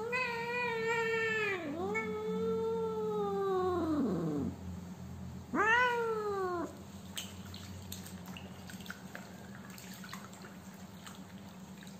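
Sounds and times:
cat meowing: 0.0s - 4.5s, 5.5s - 6.8s.

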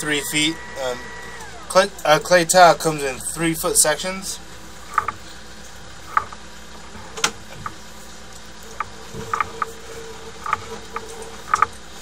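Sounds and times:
steady low hum: 0.0s - 12.0s
cable clicking and ticking: 4.9s - 5.2s, 6.1s - 6.4s, 8.4s - 11.8s.

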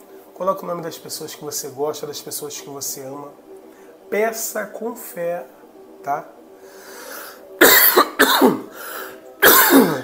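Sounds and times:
man coughing: 7.6s - 8.7s, 9.4s - 10.0s.

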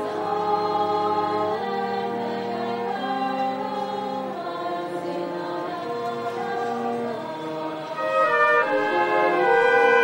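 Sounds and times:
choir singing held chords: 0.0s - 10.0s.

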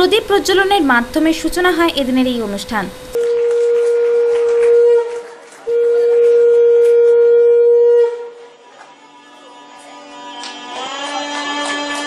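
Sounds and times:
conch shell blasts: 3.2s - 9.3s.

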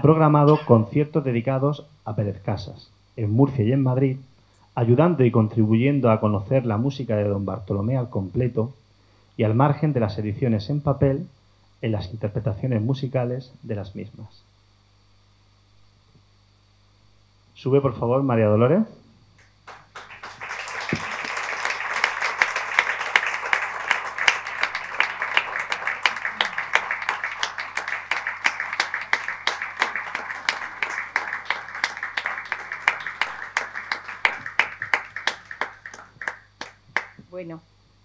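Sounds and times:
audience applauding: 19.4s - 37.2s.

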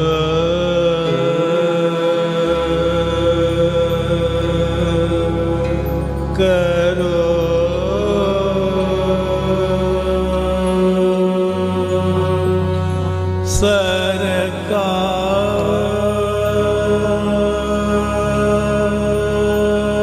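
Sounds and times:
low drone: 0.0s - 20.0s
man singing long held notes: 0.0s - 20.0s.

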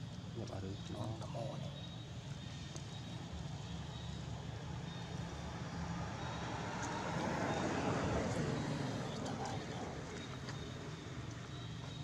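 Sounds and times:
passing motor vehicle rumble: 0.0s - 12.0s.

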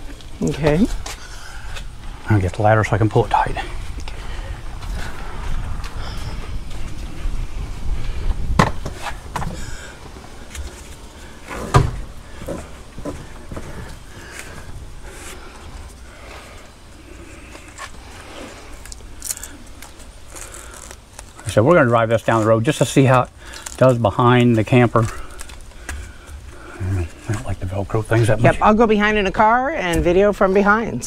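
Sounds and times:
sharp knocks: 8.6s - 9.5s
strap rustling: 8.8s - 27.5s.

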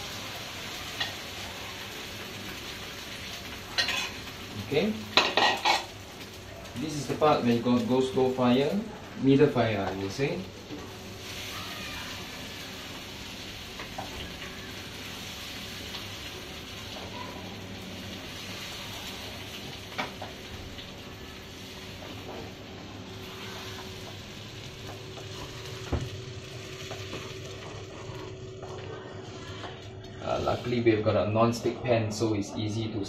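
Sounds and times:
eggs and onions sizzling in pan: 0.0s - 31.1s.

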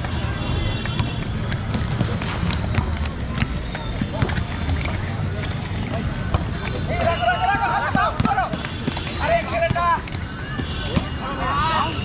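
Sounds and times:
skate wheels rumbling on court: 0.0s - 11.2s
young players shouting: 6.9s - 10.0s.

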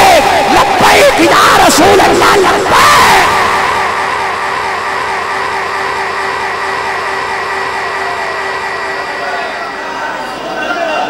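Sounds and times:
crowd chant echo: 0.0s - 11.0s
public-address system hum: 0.0s - 11.0s.

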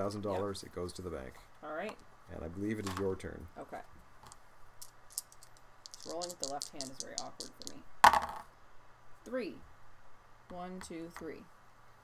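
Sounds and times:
dice clicking and rattling in hand: 4.2s - 8.5s.

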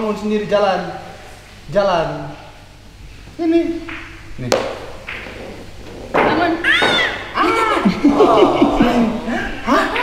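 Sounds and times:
sharp knock: 3.8s - 5.4s
high voices exclaiming and laughing: 6.6s - 10.0s.

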